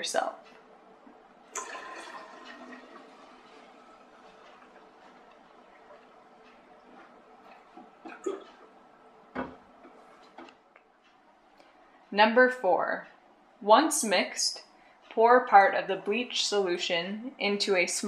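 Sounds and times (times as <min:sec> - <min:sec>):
water pouring between bottles: 0:01.5 - 0:06.0.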